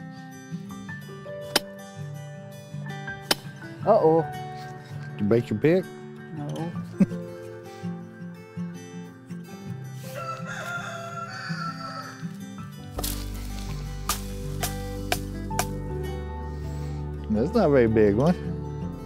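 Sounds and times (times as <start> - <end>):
background music: 0.0 - 19.0
rooster crowing: 10.0 - 12.4.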